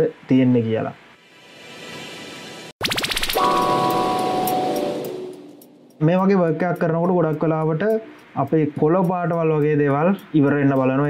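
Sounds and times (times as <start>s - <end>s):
musical sting with held chord: 3.4s - 6.1s.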